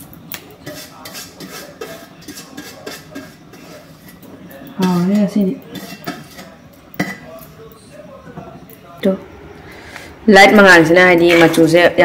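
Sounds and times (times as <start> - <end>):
metal utensils clinking on pan: 0.0 - 7.8, 10.6 - 12.0.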